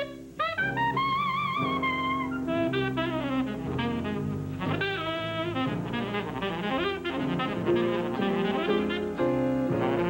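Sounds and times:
saxophone playing fast jazz: 0.0s - 10.0s.

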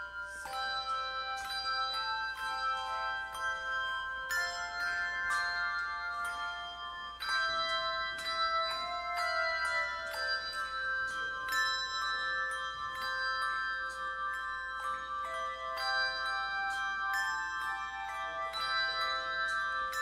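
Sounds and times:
handbell choir playing a hymn: 0.0s - 20.0s.

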